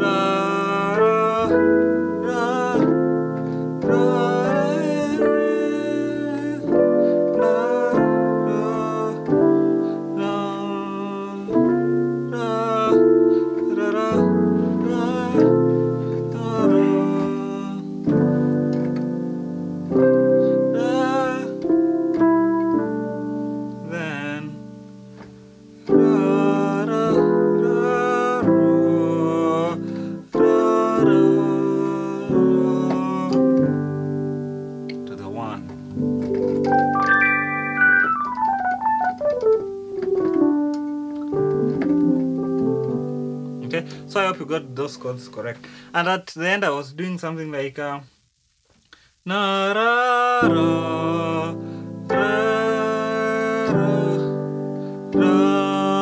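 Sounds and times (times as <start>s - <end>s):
electric piano gospel chords: 0.0s - 46.0s, 50.2s - 56.0s
falling run of piano notes: 25.8s - 43.9s.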